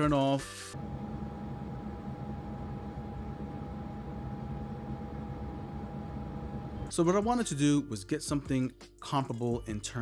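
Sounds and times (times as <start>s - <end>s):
cooler fan buzzing: 0.8s - 6.9s
high whine: 0.8s - 6.9s.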